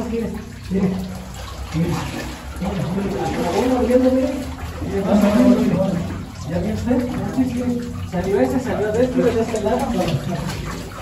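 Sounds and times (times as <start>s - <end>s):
men talking: 0.0s - 11.0s
splashing in shallow water: 0.0s - 11.0s
water trickling from rock: 0.0s - 11.0s.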